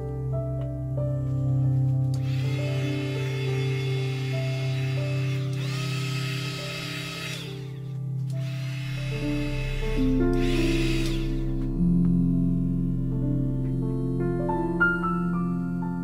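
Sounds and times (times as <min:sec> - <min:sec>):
ambient music with held notes: 0:00.0 - 0:16.0
heat gun fan whirring: 0:02.2 - 0:11.5.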